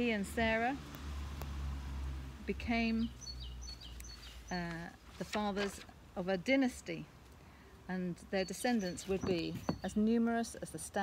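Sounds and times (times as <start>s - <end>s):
small songbird chirping: 2.7s - 5.0s, 8.2s - 10.2s.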